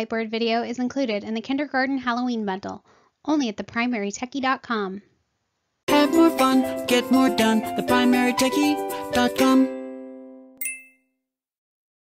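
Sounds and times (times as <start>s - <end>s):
music jingle chord: 5.9s - 11.0s
bright ding: 10.6s - 11.1s.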